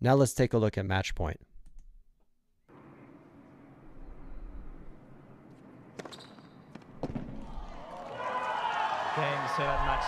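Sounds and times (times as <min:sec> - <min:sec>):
faint stadium background: 0:00.0 - 0:10.0.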